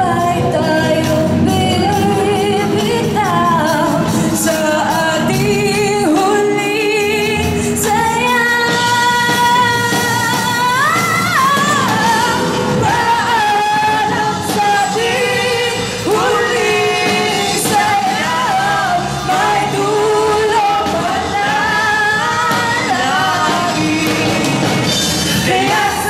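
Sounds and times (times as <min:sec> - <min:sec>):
live rock band playing: 0:00.0 - 0:26.0
woman singing: 0:00.0 - 0:26.0.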